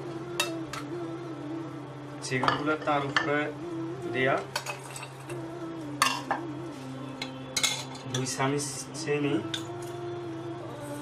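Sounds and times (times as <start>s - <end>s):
steel bowl clinking and scraping: 4.6s - 5.3s, 7.2s - 8.4s
steel bowl ringing: 7.2s - 8.4s.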